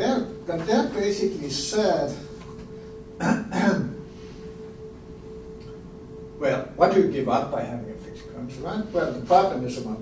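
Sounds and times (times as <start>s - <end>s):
man clearing his throat: 3.2s - 4.0s.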